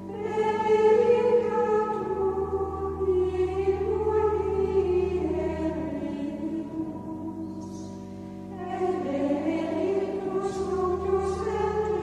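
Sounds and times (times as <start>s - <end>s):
low sustained note: 0.0s - 12.0s
choir singing held notes: 0.1s - 12.0s.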